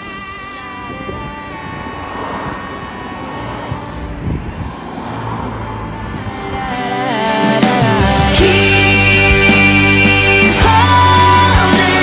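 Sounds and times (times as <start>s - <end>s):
background music: 0.0s - 12.0s
vehicle engine rumble: 0.0s - 12.0s.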